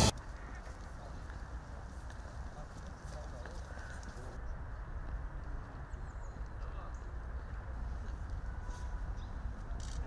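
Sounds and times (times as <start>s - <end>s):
faint footsteps on pavement: 0.0s - 10.0s.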